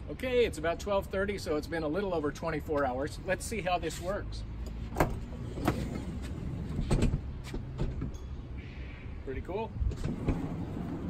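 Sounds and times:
sliding door rolling on track: 9.9 - 11.0.

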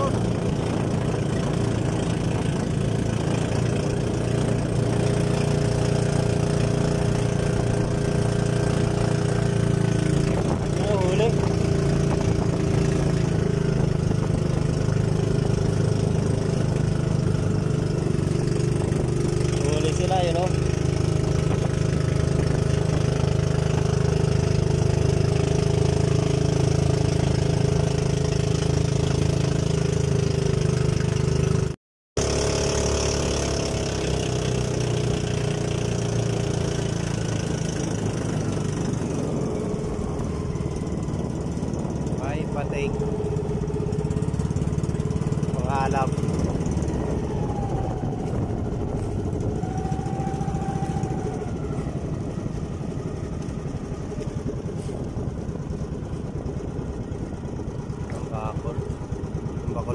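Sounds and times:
small boat engine running: 0.0 - 59.9.

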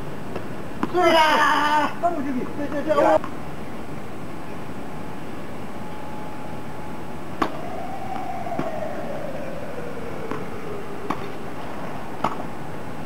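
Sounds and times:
outdoor background noise: 0.0 - 13.0
faint whine sliding down: 5.7 - 13.0
tennis ball struck by racket: 11.1 - 11.4, 12.2 - 12.5.

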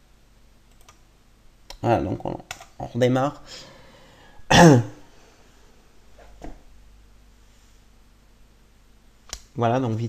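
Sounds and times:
man clearing his throat: 4.5 - 5.0.

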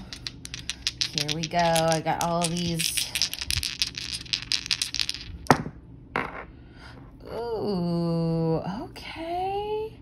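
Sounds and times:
plastic cubes rattling in hand: 0.0 - 5.5
cubes clacking as they land: 0.0 - 6.3.

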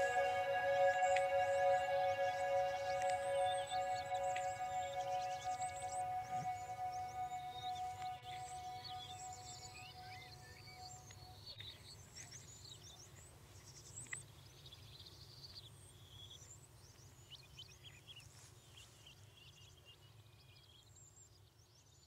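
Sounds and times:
held musical note: 0.0 - 11.0.

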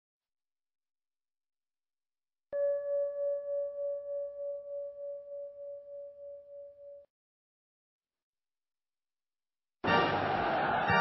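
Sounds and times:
wavering bell-like tone: 2.6 - 7.1.

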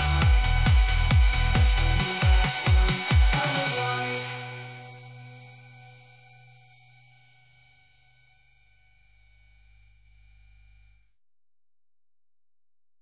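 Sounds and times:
electronic chord ringing out: 0.0 - 11.0.

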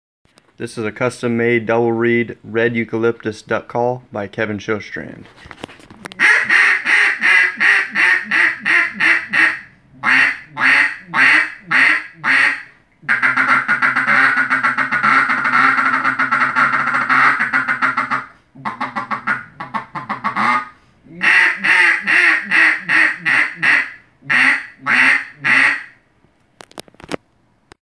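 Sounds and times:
duck call quacking: 6.2 - 26.0.

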